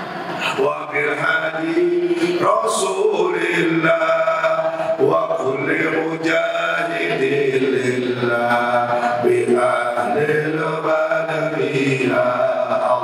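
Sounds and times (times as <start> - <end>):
man chanting into a microphone: 0.4 - 13.0.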